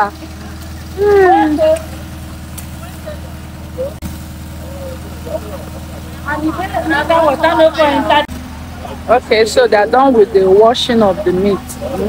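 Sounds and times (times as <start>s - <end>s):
water splashing on ground: 0.0s - 7.7s
faint voices: 0.0s - 12.0s
low engine hum: 0.0s - 12.0s.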